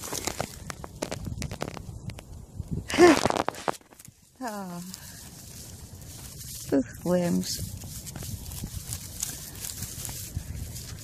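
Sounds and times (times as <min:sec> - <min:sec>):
dry straw crackling and crunching: 0:00.0 - 0:11.0.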